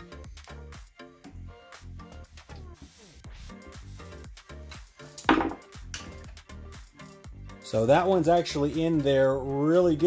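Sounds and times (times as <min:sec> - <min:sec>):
background music: 0:00.0 - 0:10.0
screwdriver set down on workbench: 0:05.2 - 0:05.6.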